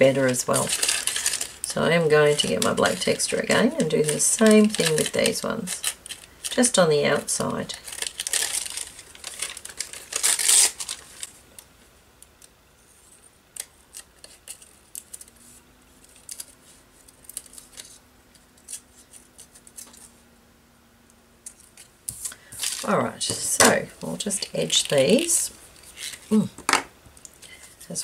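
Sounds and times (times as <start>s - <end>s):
paper rustling: 0.0s - 6.8s, 7.6s - 11.4s, 12.9s - 20.2s, 21.4s - 26.5s.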